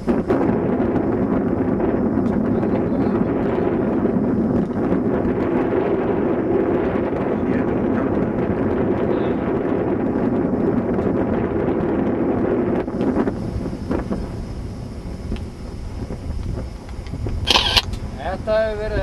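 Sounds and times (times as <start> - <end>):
low rumble: 0.0 - 19.0
wind noise: 0.0 - 19.0.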